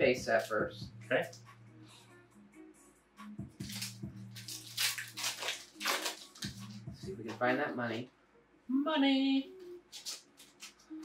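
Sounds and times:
quiet background music: 0.0s - 11.0s
foil pack crinkling and tearing: 3.6s - 6.6s, 9.9s - 10.9s.

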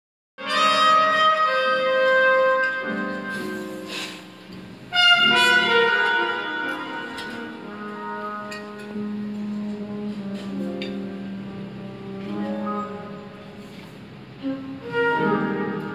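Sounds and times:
jazz band accompaniment: 0.4s - 15.9s
jazz trumpet sustained notes: 0.4s - 15.9s.

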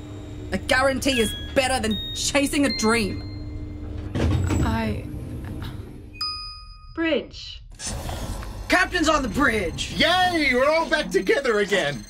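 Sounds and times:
electronic chime: 0.0s - 3.9s, 8.7s - 12.0s
low steady hum: 0.0s - 7.6s.

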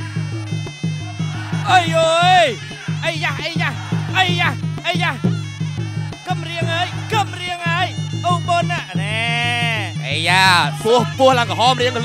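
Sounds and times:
repeating drum rhythm: 0.0s - 12.0s
commentator speaking: 1.5s - 5.4s, 6.2s - 12.0s.

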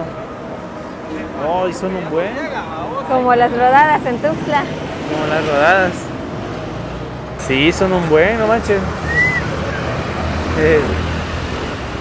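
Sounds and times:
city traffic rumble: 0.0s - 12.0s.

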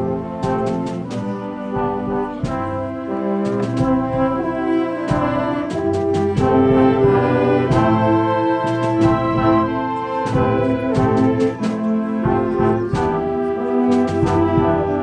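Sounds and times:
concert wind band playing: 0.0s - 15.0s.

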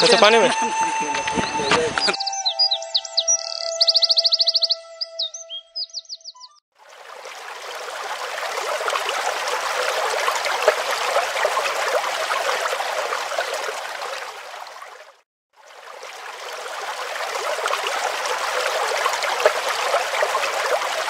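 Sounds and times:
birds chirping and trilling: 0.0s - 6.6s.

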